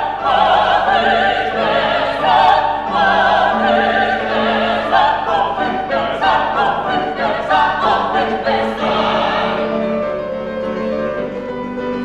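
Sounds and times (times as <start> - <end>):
operatic voices singing: 0.0 - 10.2
piano accompaniment: 0.0 - 12.0.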